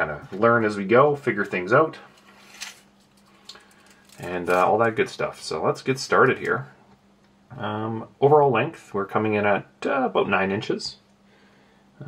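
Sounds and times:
faint steady hum: 0:00.0 - 0:12.0
soft handling sounds: 0:01.2 - 0:05.1.

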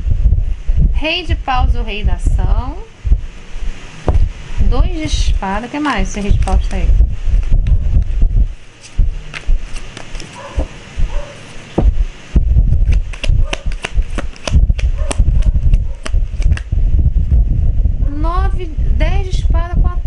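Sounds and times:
cards being shuffled: 0:05.8 - 0:12.0, 0:12.7 - 0:16.7
sharp card flicks and taps: 0:12.8 - 0:16.7.

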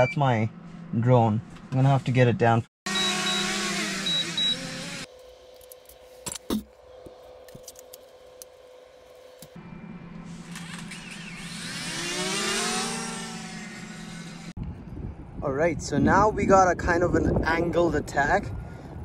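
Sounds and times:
drone propellers whining: 0:02.9 - 0:05.8, 0:08.1 - 0:14.5.

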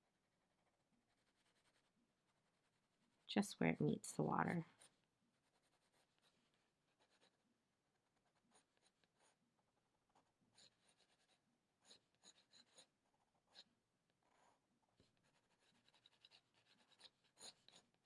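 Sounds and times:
colored pencil scratching on paper: 0:00.2 - 0:03.4, 0:04.7 - 0:18.0.

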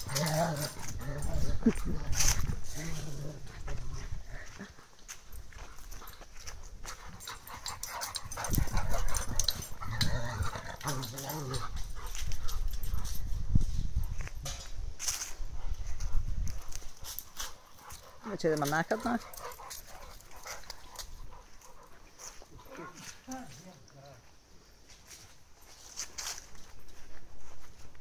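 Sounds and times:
dogs growling: 0:00.0 - 0:04.8, 0:07.1 - 0:13.0
scuffling: 0:00.0 - 0:23.9.

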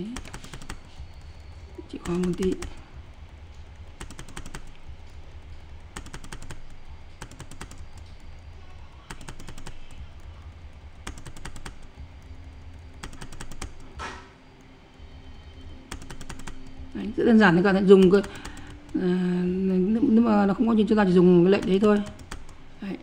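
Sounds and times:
keyboard key clicks: 0:00.1 - 0:03.3, 0:04.0 - 0:08.4, 0:09.0 - 0:16.9, 0:21.6 - 0:22.6.

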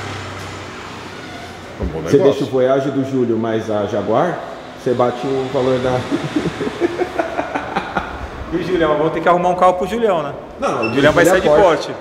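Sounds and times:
men laughing: 0:05.8 - 0:08.7.

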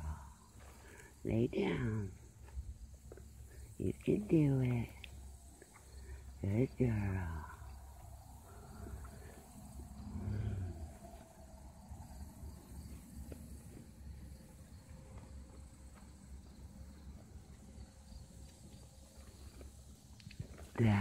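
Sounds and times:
low rumble: 0:04.8 - 0:15.9.

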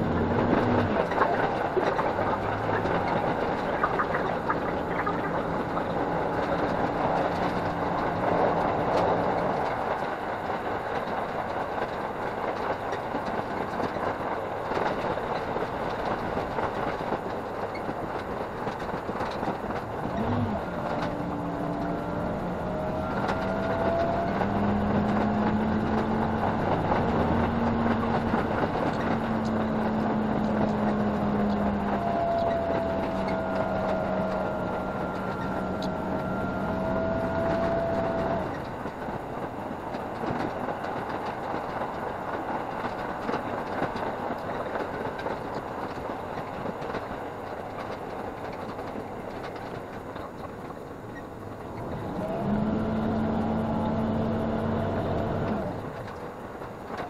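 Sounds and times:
engine hum: 0:00.0 - 0:57.0
railcar rushing rumble: 0:00.0 - 0:57.0.

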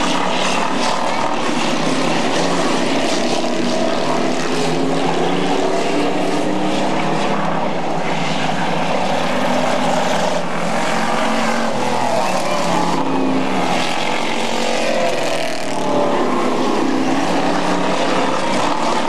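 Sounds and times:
race car engines at speed: 0:00.0 - 0:19.0.

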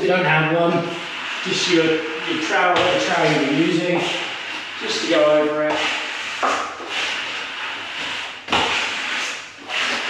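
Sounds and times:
trowel scraping plaster: 0:00.6 - 0:10.0.

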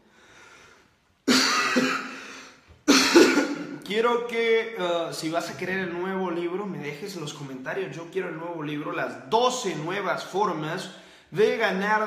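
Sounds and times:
man coughing: 0:01.2 - 0:03.8.

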